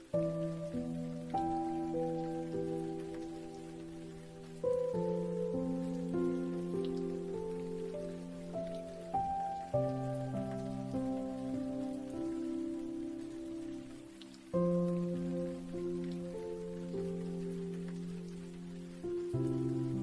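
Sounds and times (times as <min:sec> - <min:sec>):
rain falling: 0:00.0 - 0:20.0
slow soft piano music: 0:00.0 - 0:20.0.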